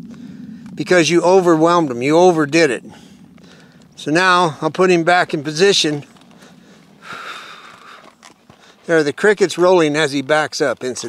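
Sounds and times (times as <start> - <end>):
hoof steps in sand: 3.2 - 11.0.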